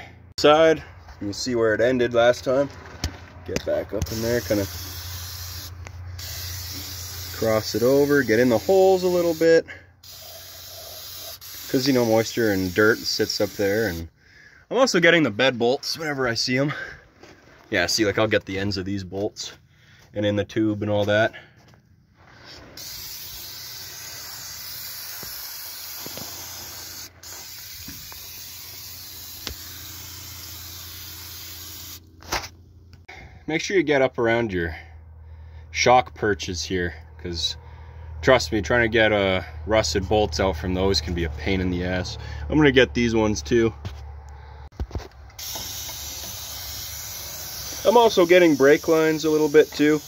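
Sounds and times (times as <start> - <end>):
aerosol can spraying hiss: 4.1 - 9.4, 10.0 - 14.1, 22.8 - 32.0, 45.4 - 50.0.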